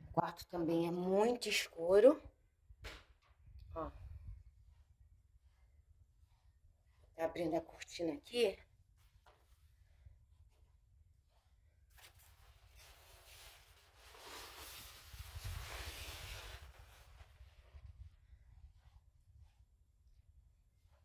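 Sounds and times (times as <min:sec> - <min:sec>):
curtain fabric rustling: 0:11.9 - 0:17.4.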